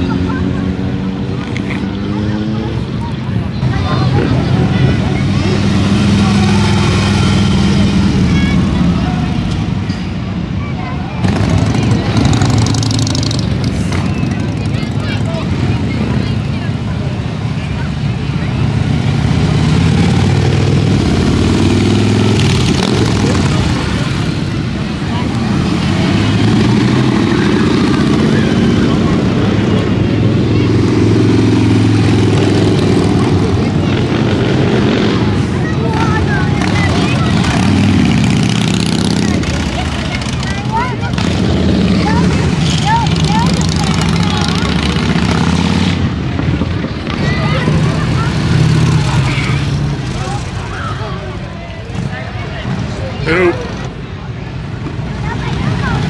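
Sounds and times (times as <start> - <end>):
crowd chatter: 0.0 - 56.0
motorcycles riding past: 0.0 - 56.0.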